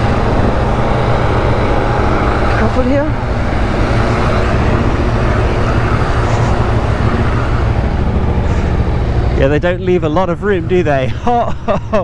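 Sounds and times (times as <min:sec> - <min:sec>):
motorcycle engine running: 0:00.0 - 0:11.4.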